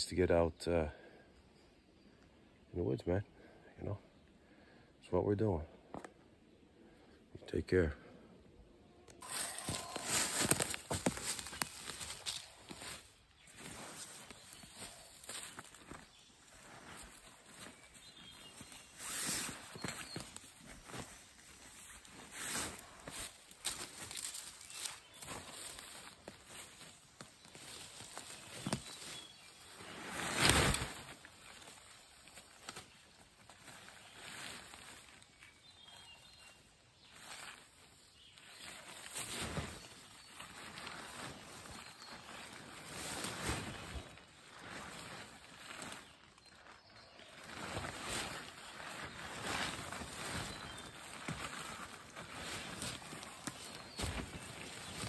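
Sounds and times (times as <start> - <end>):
footsteps on forest floor: 9.2 - 35.1, 37.1 - 55.0.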